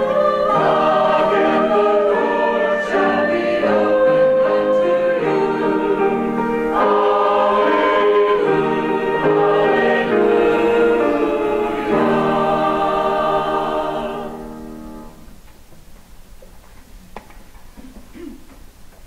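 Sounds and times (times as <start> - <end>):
church choir singing: 0.0 - 15.3.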